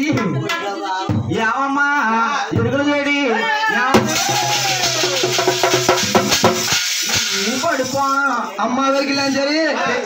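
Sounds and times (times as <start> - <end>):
drum: 0.0 - 1.5, 2.5 - 2.9, 3.9 - 8.4
hand cymbals clashing: 4.0 - 8.4.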